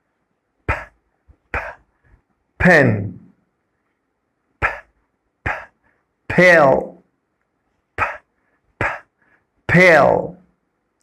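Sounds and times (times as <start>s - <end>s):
man pronouncing p sound: 0.7s - 1.8s, 2.6s - 3.3s, 4.6s - 5.7s, 6.3s - 7.0s, 8.0s - 9.1s, 9.7s - 10.4s.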